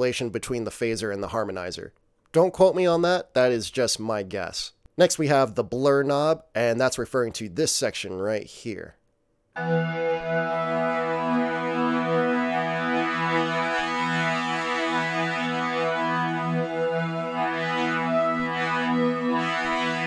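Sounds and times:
synthesizer pad chord: 9.6s - 20.0s.

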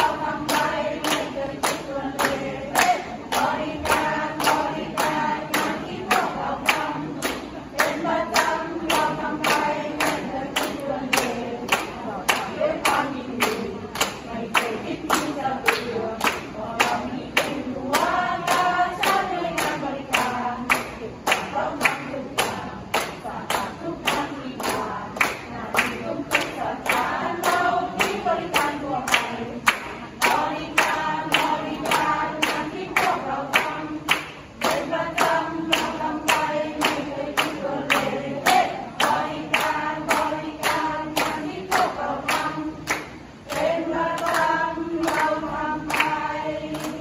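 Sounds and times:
hands clapping on a beat: 0.0s - 47.0s
women singing together: 0.0s - 47.0s.

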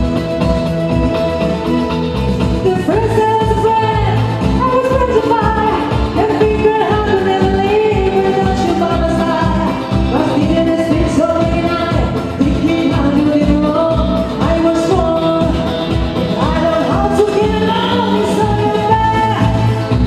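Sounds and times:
live rock band playing: 0.0s - 20.0s
woman singing: 2.4s - 20.0s.

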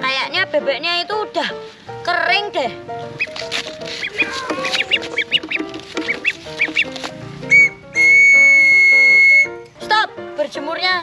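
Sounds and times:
background music: 0.0s - 11.0s
plastic toy whistle blowing: 7.5s - 9.5s.

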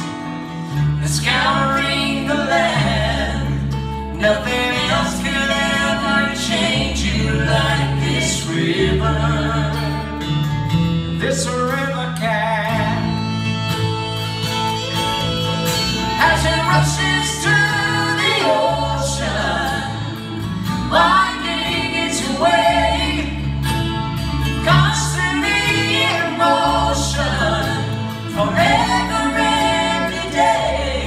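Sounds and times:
acoustic string band playing: 0.0s - 31.0s
voices singing together: 0.9s - 10.3s, 16.2s - 23.8s, 24.6s - 31.0s.

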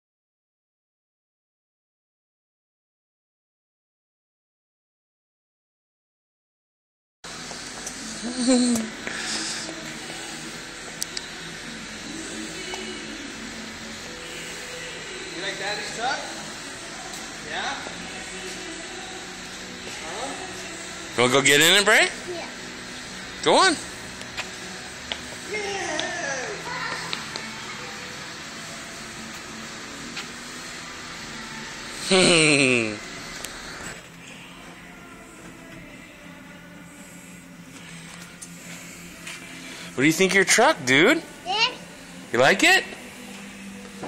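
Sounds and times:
garage background hum: 7.2s - 44.0s
child's voice: 22.2s - 22.6s, 26.6s - 27.2s, 41.4s - 41.9s.

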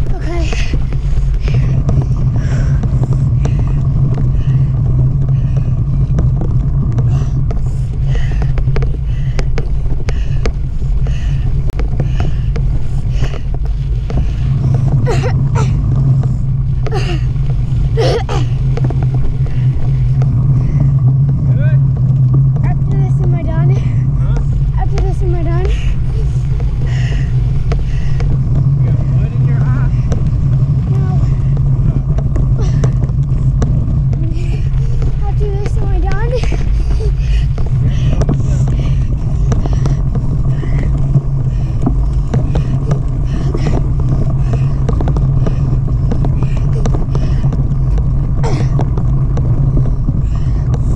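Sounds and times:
wind rumble on camera: 0.0s - 50.9s.

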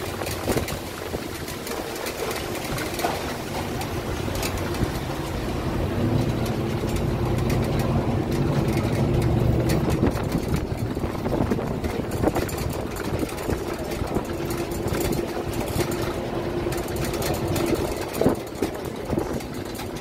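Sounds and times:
bus engine hum: 0.0s - 20.0s
road noise: 0.0s - 20.0s.

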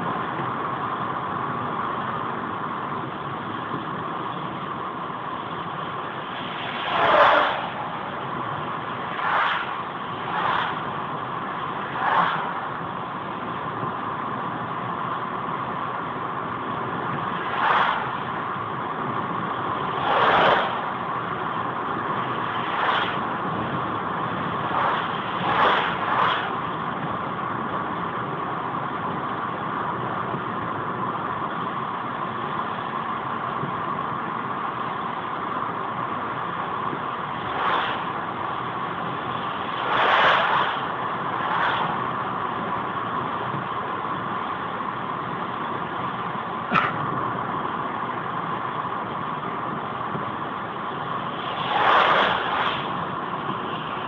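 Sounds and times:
road and tyre noise: 0.0s - 54.0s
trucks passing whoosh: 0.0s - 54.0s.

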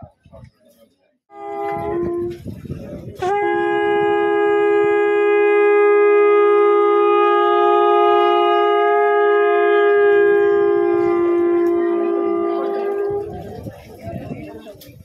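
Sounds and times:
horns blowing long note: 1.3s - 13.6s.

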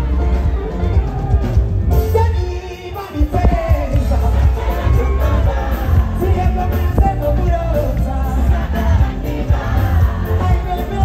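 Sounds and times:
man singing: 2.0s - 11.0s
heavy bass beat: 3.2s - 11.0s.

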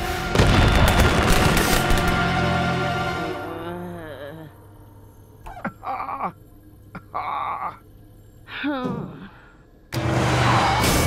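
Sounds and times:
loud burst of noise: 0.0s - 2.5s
animated character groaning: 3.3s - 4.6s, 7.0s - 7.8s.

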